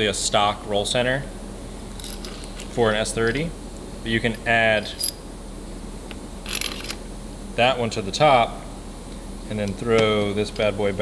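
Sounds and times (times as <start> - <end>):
metal parts clinking: 2.0 - 2.8, 4.9 - 5.2, 6.4 - 7.0.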